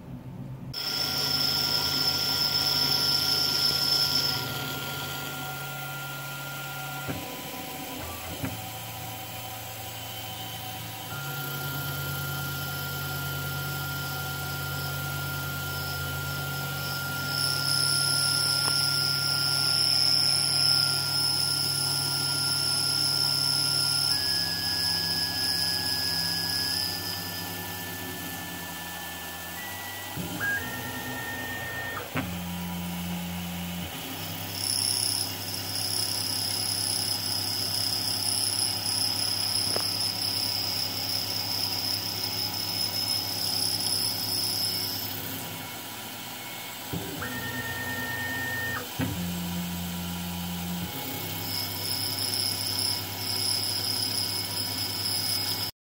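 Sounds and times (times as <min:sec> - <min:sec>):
machine motor tones: 0:00.8 - 0:55.7
milling machine cutting plastic: 0:00.8 - 0:55.7.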